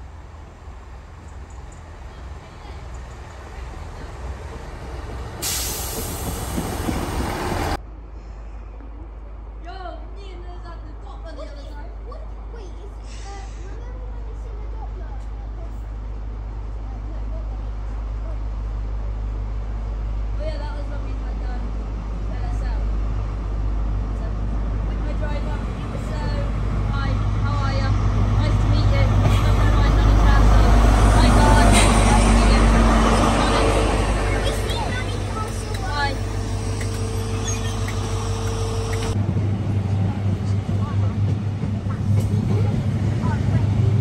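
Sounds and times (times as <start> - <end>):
diesel train engine hum: 0.0 - 44.0
train wheels clicking on rails: 1.2 - 7.8, 28.7 - 44.0.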